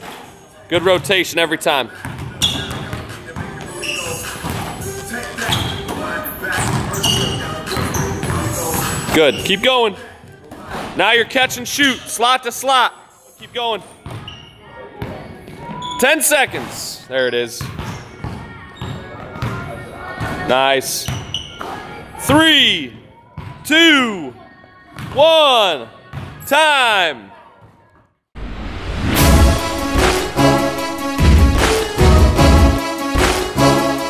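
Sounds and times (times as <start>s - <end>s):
background music: 0.0s - 11.4s, 28.4s - 34.0s
basketball bouncing on wooden floor: 2.0s - 3.7s.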